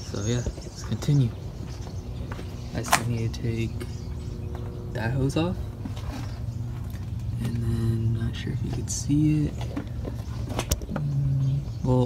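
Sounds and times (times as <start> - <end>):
man speaking: 0.0 - 1.4, 2.7 - 3.8, 4.9 - 5.7, 7.4 - 9.6
sharp click: 2.8 - 3.1
man humming: 10.9 - 11.7.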